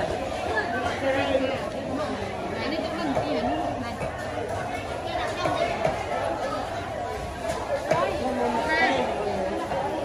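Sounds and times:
chatter of vendors and shoppers: 0.0 - 10.0.

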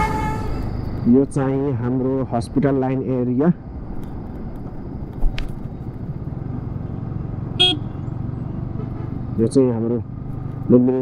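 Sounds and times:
short horn toot: 0.0 - 0.7, 7.6 - 8.0
motorcycle engine rumble: 0.0 - 11.0
road noise: 0.0 - 11.0.

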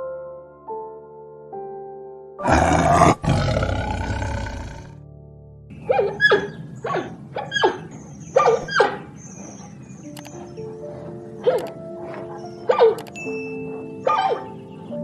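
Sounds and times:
soft background music: 0.0 - 15.0
tiger roaring: 2.4 - 5.0.

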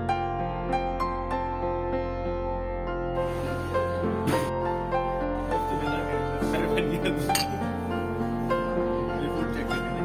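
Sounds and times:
music with long held notes: 0.0 - 10.0.

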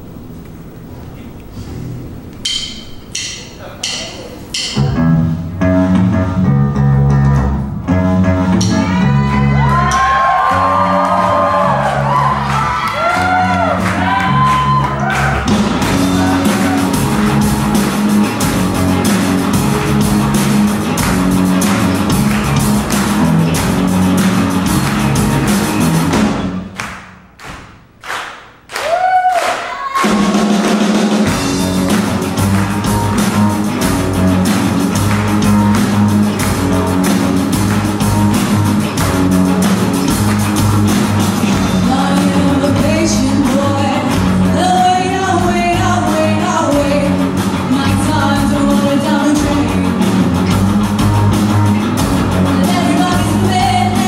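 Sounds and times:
drumstick clicks: 2.3 - 5.0
rock band playing: 2.4 - 27.0, 29.9 - 54.0
person singing: 41.7 - 50.2, 52.5 - 54.0.

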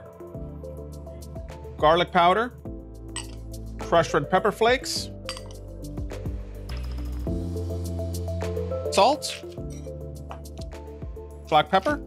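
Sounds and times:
background music: 0.0 - 12.0
glass bowls clinking: 3.2 - 3.4, 5.2 - 5.6, 6.7 - 7.2.

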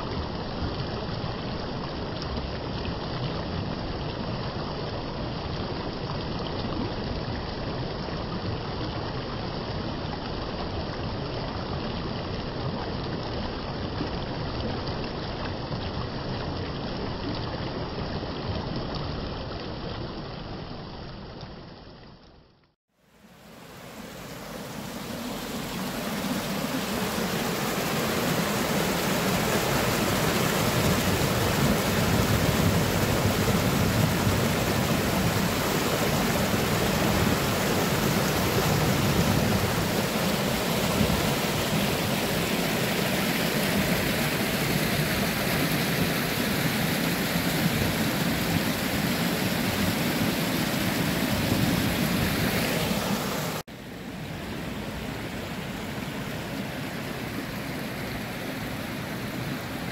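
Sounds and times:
stream water rushing over rocks: 22.9 - 59.9.

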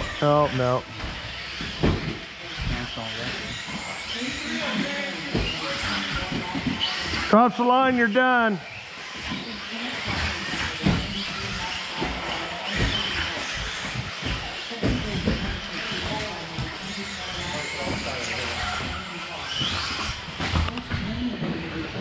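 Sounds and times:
chatter in a large hall: 0.0 - 22.0
rc car motor whine: 0.0 - 22.0.

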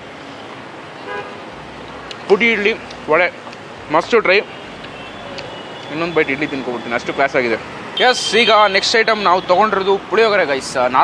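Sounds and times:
street traffic hum: 0.0 - 11.0
vehicle horn toot: 1.0 - 1.4, 4.5 - 7.3, 8.0 - 9.6.

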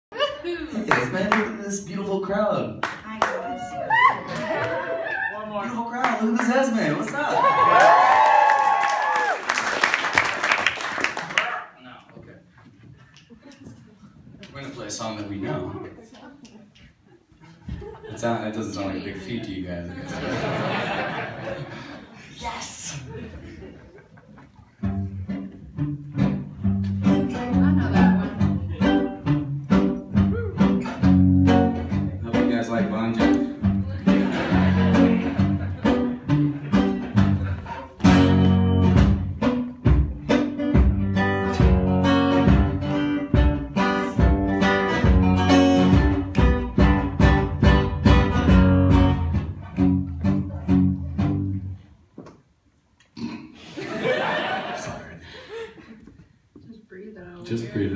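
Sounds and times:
acoustic guitar picked and strummed: 24.8 - 51.7.

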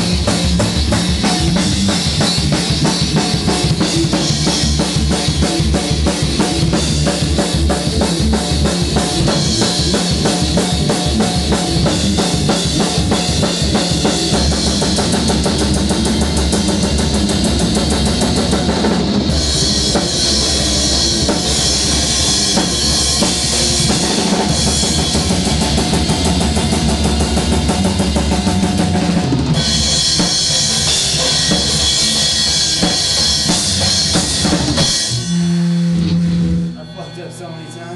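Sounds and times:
electric guitar: 0.0 - 37.8
drum kit: 0.0 - 37.9
metal band playing: 0.0 - 37.9.

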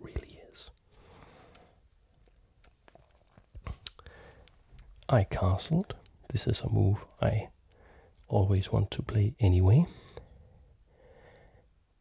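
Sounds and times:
close-up whispered speech: 0.0 - 0.8
quiet hiss: 0.0 - 12.0
small sharp clicks: 2.6 - 5.1.

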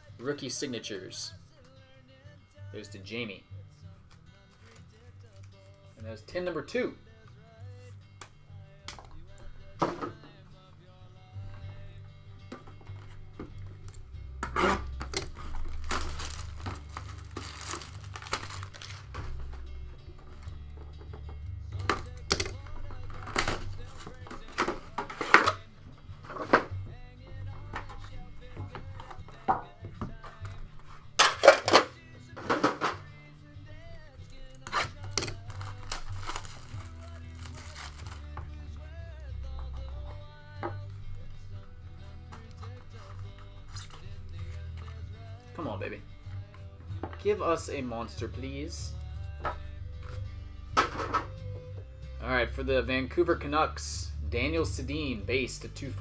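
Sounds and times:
background music with low beat: 0.0 - 56.0
plastic wrap crinkling and tearing: 4.5 - 5.8, 13.9 - 19.6, 34.3 - 38.7.

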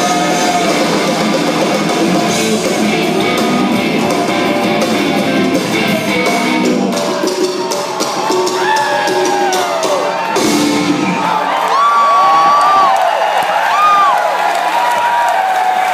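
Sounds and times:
crowd cheering and whooping: 0.0 - 15.9.

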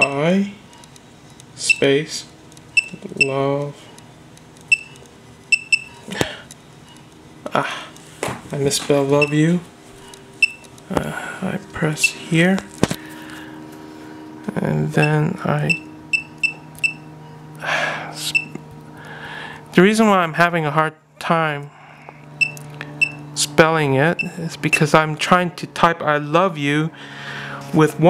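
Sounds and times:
faint steady hum: 0.0 - 28.0
electronic key-click beeps: 1.6 - 1.9, 2.8 - 3.4, 4.7 - 6.0, 9.2 - 9.4, 10.4 - 10.7, 15.0 - 17.1, 18.3 - 18.6, 22.4 - 23.2.

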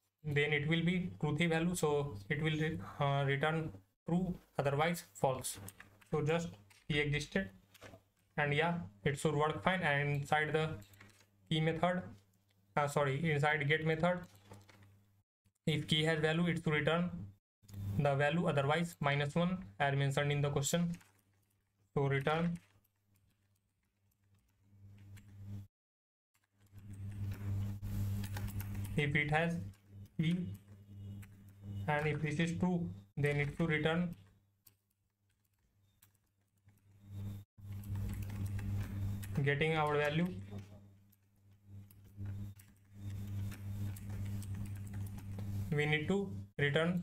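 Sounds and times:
low electrical hum: 0.2 - 23.2, 26.6 - 34.6, 35.3 - 47.0
keyboard typing: 20.1 - 25.7, 26.4 - 32.5, 33.2 - 46.2.

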